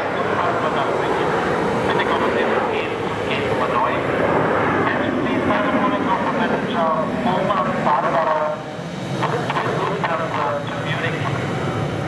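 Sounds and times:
people talking: 0:00.0 - 0:04.0, 0:04.9 - 0:08.6, 0:09.2 - 0:11.5
jet engine rumble: 0:00.0 - 0:12.0.

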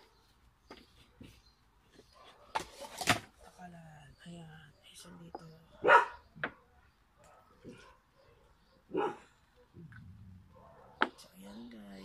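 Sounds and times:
dog barking: 0:05.7 - 0:09.8, 0:10.5 - 0:11.2.

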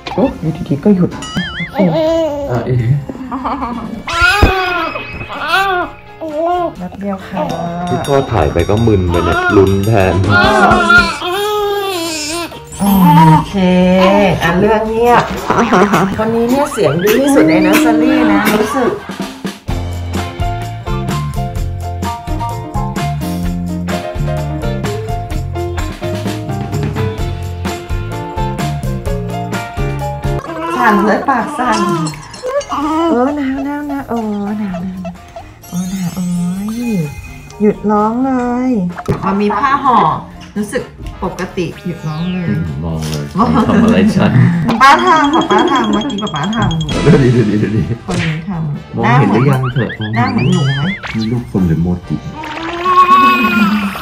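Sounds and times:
background music: 0:00.0 - 0:54.0
baby crying: 0:01.6 - 0:02.7, 0:04.0 - 0:06.8, 0:09.2 - 0:13.6, 0:30.4 - 0:35.8, 0:52.3 - 0:54.0.

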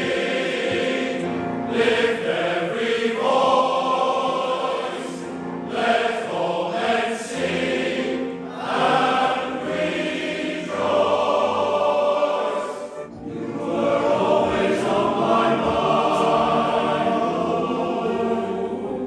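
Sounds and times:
male voice choir singing: 0:00.0 - 0:19.0.

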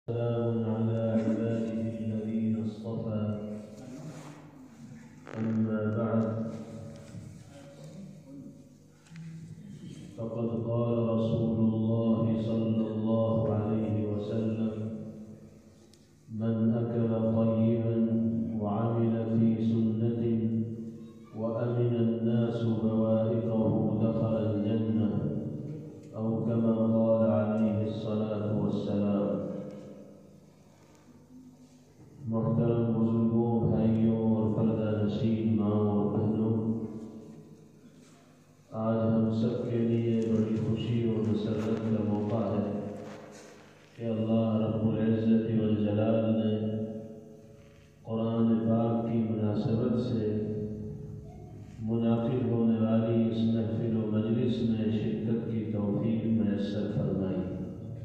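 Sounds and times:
man chanting: 0:00.0 - 0:04.2, 0:05.2 - 0:08.2, 0:09.8 - 0:15.5, 0:16.3 - 0:30.0, 0:32.2 - 0:37.4, 0:38.7 - 0:43.3, 0:43.9 - 0:47.1, 0:48.1 - 0:58.0.

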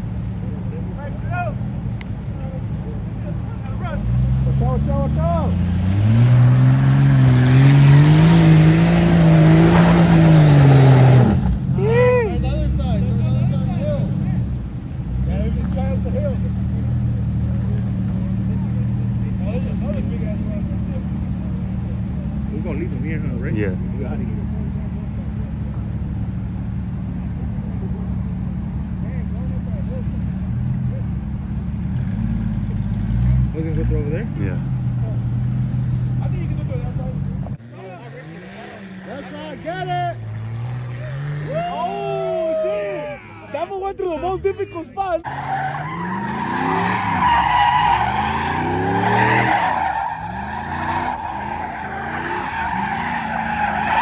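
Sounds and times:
tyres rushing on dirt: 0:00.0 - 0:54.0
engine revving hard: 0:04.2 - 0:11.6, 0:46.0 - 0:54.0.

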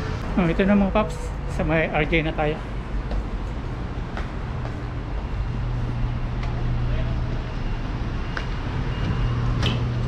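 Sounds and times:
road noise: 0:00.0 - 0:10.0
vehicle engine hum: 0:00.0 - 0:10.0.

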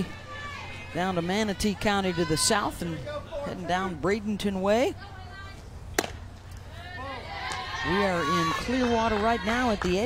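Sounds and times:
ballpark background noise: 0:00.0 - 0:10.0
ball smacking into leather mitt: 0:06.0 - 0:06.2.

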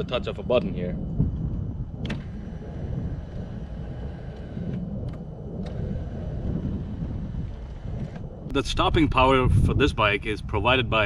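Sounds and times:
thin motor whine: 0:00.0 - 0:08.5
steady low rumble: 0:00.0 - 0:11.0.

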